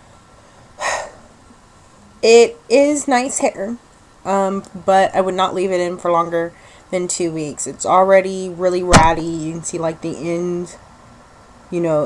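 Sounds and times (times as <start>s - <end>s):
woman's sharp breath: 0.8s - 1.2s.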